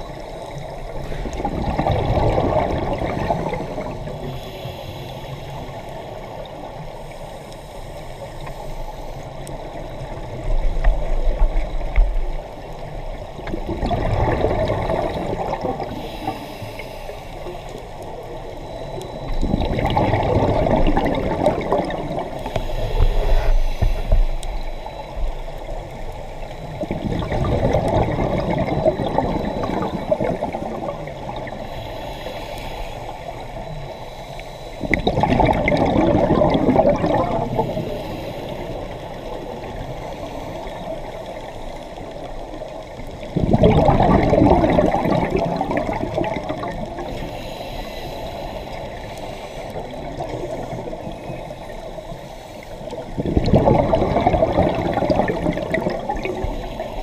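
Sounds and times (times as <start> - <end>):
gurgling rush of bubbles: 0.0 - 4.4, 9.9 - 16.8, 19.1 - 24.4, 25.2 - 31.8, 34.8 - 47.4, 48.4 - 57.0
quiet hiss: 14.2 - 26.9, 27.9 - 35.0, 45.4 - 53.2.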